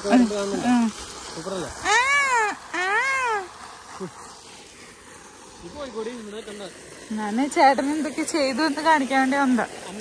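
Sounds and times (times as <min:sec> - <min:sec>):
baby squealing: 0:01.8 - 0:03.5.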